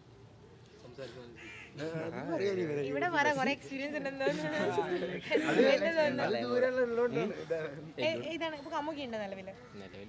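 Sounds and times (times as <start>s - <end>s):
crow cawing: 1.2s - 1.9s, 9.4s - 10.0s
people laughing: 1.8s - 2.7s, 4.1s - 6.2s.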